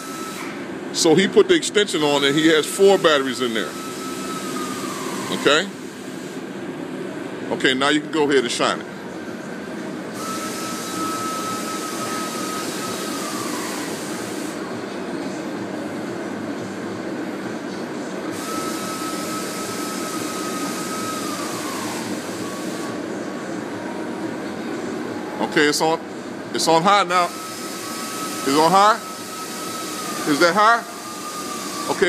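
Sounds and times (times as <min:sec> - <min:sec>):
whining air tool: 0:00.0 - 0:06.4, 0:10.1 - 0:14.6, 0:18.3 - 0:23.1, 0:26.6 - 0:32.0
steady machine hum: 0:00.0 - 0:32.0.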